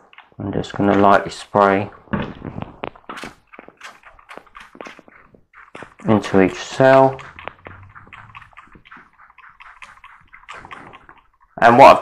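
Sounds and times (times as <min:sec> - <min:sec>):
spray bottle spritzing: 0:02.5 - 0:11.6.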